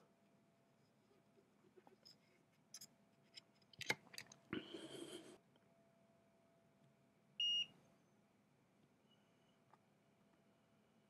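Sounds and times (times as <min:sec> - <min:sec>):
multimeter beep: 0:07.4 - 0:07.7.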